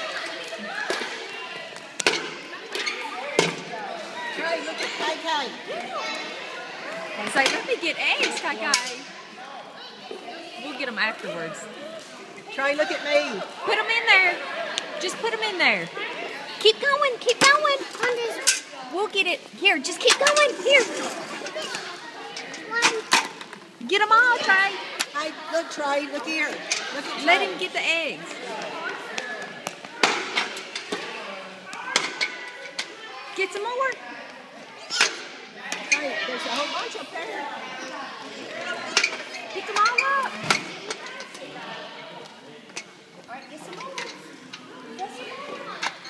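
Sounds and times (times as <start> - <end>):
people talking: 0.0 - 23.2, 23.8 - 30.1
background chatter: 0.0 - 46.0
children playing: 0.0 - 46.0.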